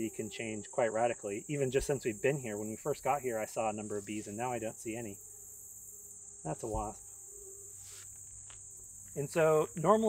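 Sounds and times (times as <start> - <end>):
insects singing: 0.0 - 10.0.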